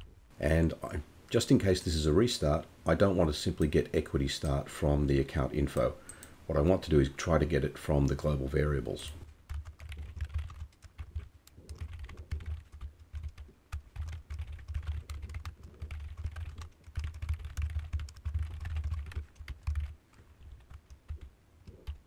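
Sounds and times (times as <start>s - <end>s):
typing on computer keyboard: 9.5s - 22.0s.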